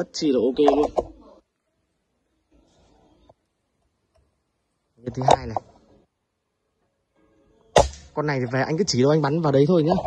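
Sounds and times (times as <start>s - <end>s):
air rifle shot: 7.8s - 8.2s.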